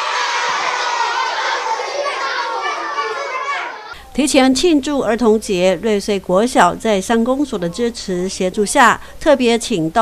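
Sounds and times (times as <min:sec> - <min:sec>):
young children chattering: 0:00.0 - 0:04.0.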